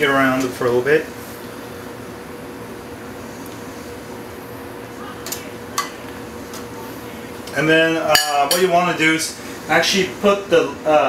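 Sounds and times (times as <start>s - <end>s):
soup boiling with steady hiss: 0.0s - 11.0s
steady hum: 0.0s - 11.0s.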